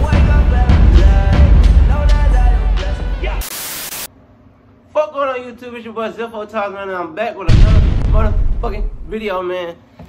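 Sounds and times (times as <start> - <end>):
intro music with heavy bass: 0.0 - 3.5
burst of static hiss: 3.4 - 4.1.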